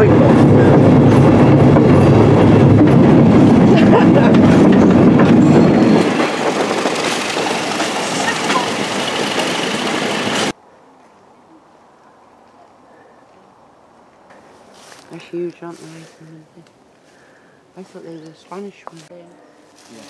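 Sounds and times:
train running on track: 0.0s - 10.6s.

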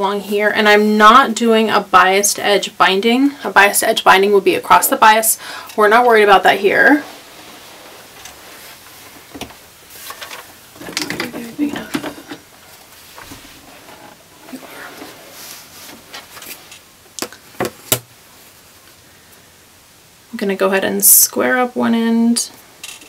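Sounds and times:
fabric rustling: 5.8s - 16.9s.

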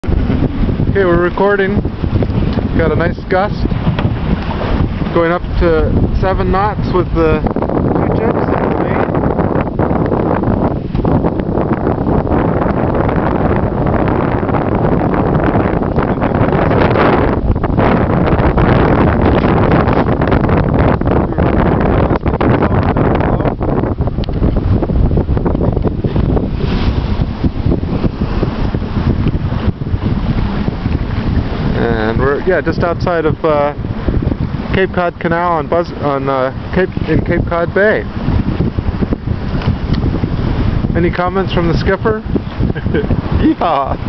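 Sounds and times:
water rushing along hull: 0.0s - 44.0s
wind buffeting microphone: 0.0s - 44.0s.

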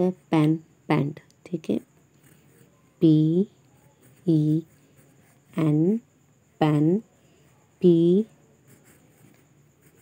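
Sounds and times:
pencil scratching on paper: 2.1s - 2.8s, 3.4s - 5.9s, 7.4s - 10.0s.

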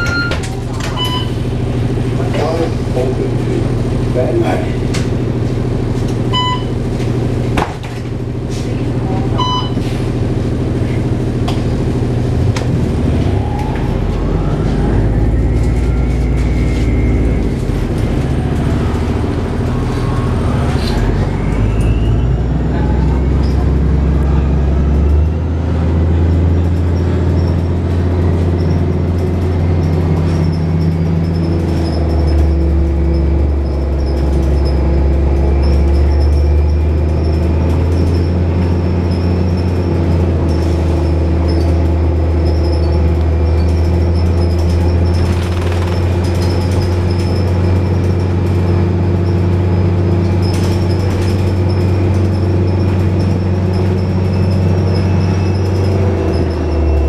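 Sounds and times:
bus diesel engine drone: 0.0s - 57.0s
short electronic beeps: 6.3s - 6.8s, 9.4s - 9.8s.

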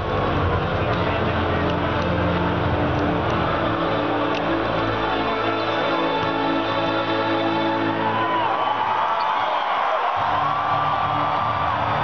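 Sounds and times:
low droning soundtrack over speakers: 0.0s - 8.9s
crowd talking: 0.0s - 12.0s.

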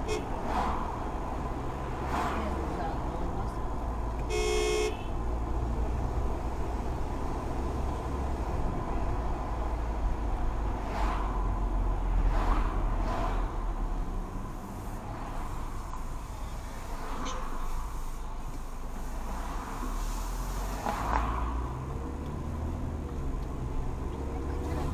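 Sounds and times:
car horn toot: 0.0s - 0.4s, 4.2s - 5.2s
car engine and road rumble: 0.0s - 24.9s.

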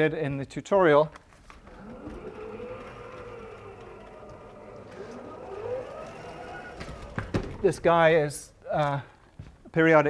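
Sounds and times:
sliding chalkboard panels rumbling: 1.4s - 8.2s
rising squeal: 1.5s - 7.9s.

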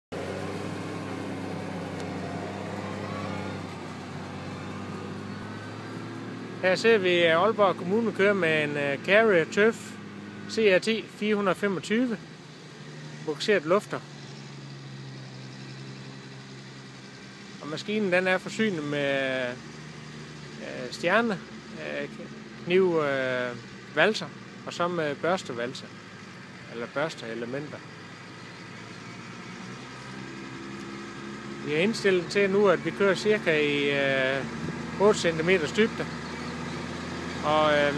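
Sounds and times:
tractor diesel engine running: 0.1s - 37.9s.

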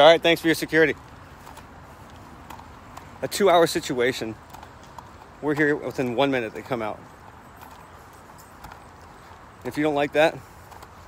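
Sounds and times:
speech: 0.0s - 1.0s, 3.2s - 4.4s, 5.4s - 7.0s, 9.6s - 10.4s.

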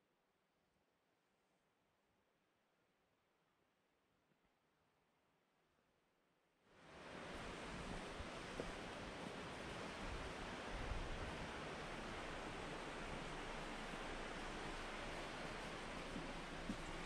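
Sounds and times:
outdoor rushing hiss: 6.8s - 17.0s.

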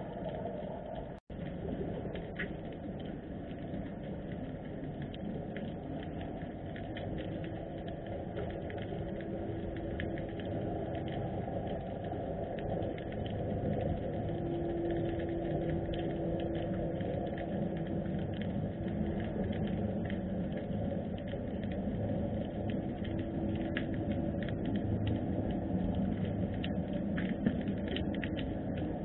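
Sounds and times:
faint steady hum: 0.0s - 29.0s
faint underwater clicks and crackles: 0.0s - 29.0s
underwater low rumble: 0.0s - 29.0s.

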